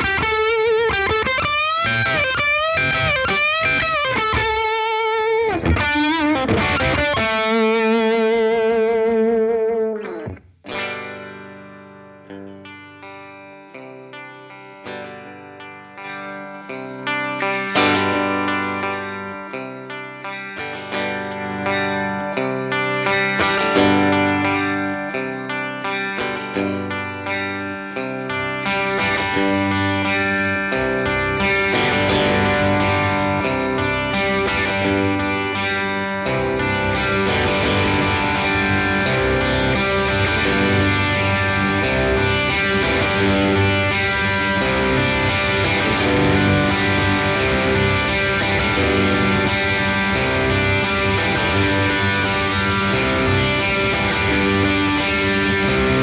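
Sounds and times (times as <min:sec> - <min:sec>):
electric guitar chords: 0:00.0 - 0:56.0
overdriven electric guitar lead: 0:00.0 - 0:56.0.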